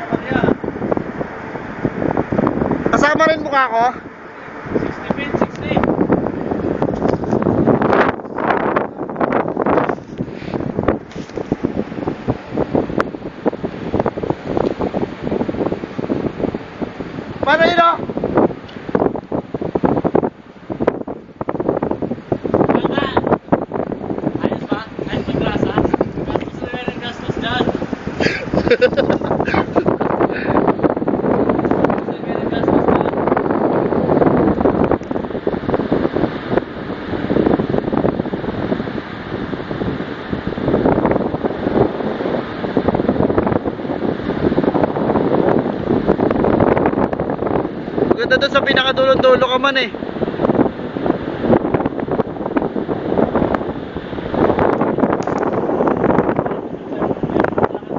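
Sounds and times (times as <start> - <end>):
wind buffeting microphone: 0.0 - 57.9.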